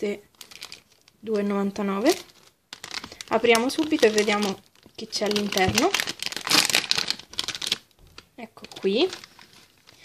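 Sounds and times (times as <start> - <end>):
plastic foil bag crinkling: 0.3 - 10.0.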